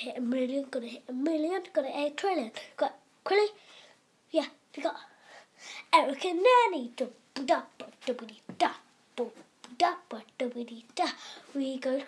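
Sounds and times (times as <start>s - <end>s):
child singing syllables: 5.9s - 12.0s.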